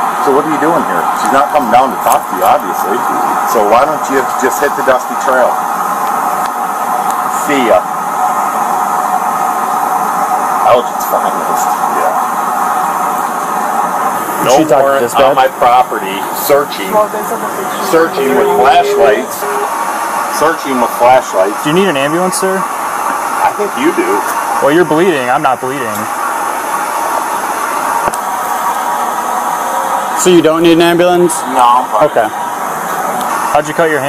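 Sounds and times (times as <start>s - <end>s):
steady rushing drone: 2.6s - 33.5s.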